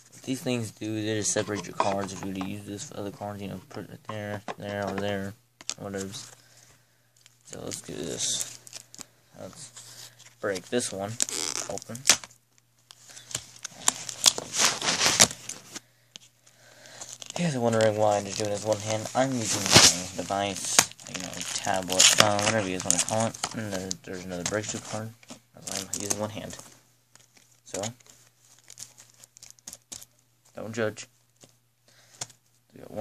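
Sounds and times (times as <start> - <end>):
plastic packaging crinkling: 7.2 - 9.1, 12.9 - 15.8, 16.9 - 23.9, 25.6 - 30.2.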